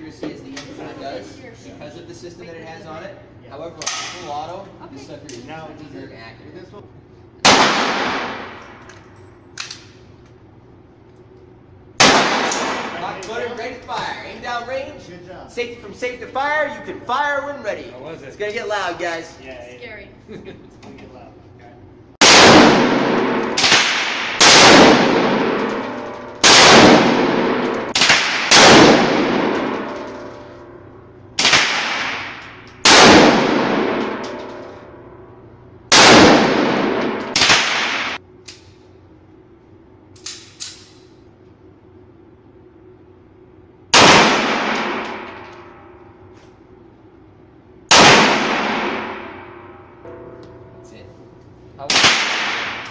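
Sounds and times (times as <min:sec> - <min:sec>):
rifle shots echoing indoors: 0:07.4 - 0:09.0, 0:11.9 - 0:13.3, 0:22.2 - 0:30.8, 0:31.4 - 0:35.2, 0:35.9 - 0:38.8, 0:43.9 - 0:46.2, 0:47.9 - 0:50.6, 0:51.8 - 0:52.9.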